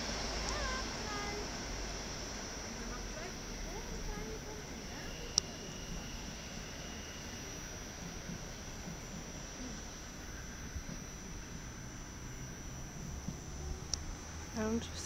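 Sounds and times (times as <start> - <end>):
electric train rumble: 0.0 - 15.0.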